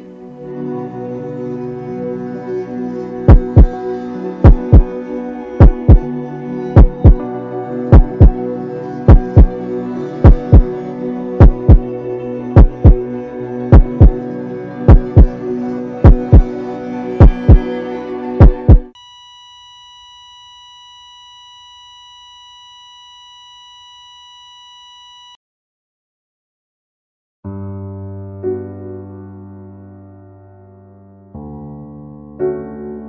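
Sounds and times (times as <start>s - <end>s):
heart monitor flatline beep: 3.3s - 3.8s, 4.4s - 4.9s, 5.6s - 6.1s, 6.8s - 7.2s, 7.9s - 8.4s, 9.1s - 9.5s, 10.2s - 10.7s, 11.4s - 11.8s, 12.6s - 13.0s, 13.7s - 14.2s, 14.9s - 15.3s, 16.0s - 16.5s, 17.2s - 17.7s, 18.4s - 25.4s
heartbeat thumps: 3.3s - 3.8s, 4.4s - 4.9s, 5.6s - 6.1s, 6.8s - 7.2s, 7.9s - 8.4s, 9.1s - 9.5s, 10.2s - 10.7s, 11.4s - 11.9s, 12.6s - 13.0s, 13.7s - 14.2s, 14.9s - 15.3s, 16.0s - 16.5s, 17.2s - 17.7s, 18.4s - 19.0s.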